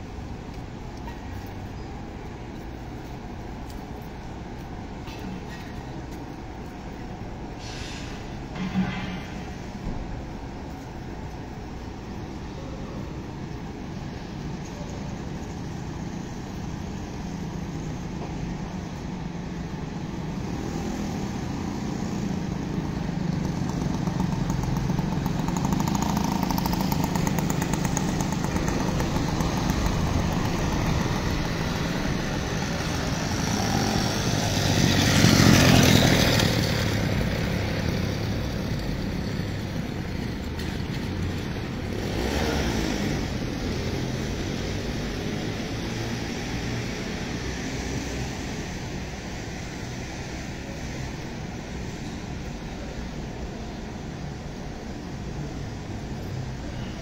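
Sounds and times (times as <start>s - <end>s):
low traffic rumble: 0.0s - 57.0s.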